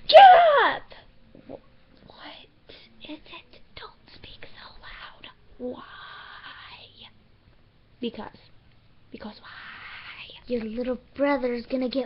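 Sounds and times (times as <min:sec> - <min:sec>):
quiet whispering: 0:01.0 - 0:07.2, 0:09.2 - 0:10.5.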